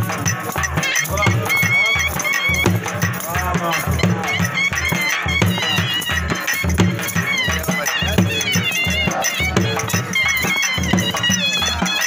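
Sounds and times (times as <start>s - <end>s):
fast dhol drumming: 0.0s - 12.0s
high wavering wind instrument: 0.0s - 12.0s.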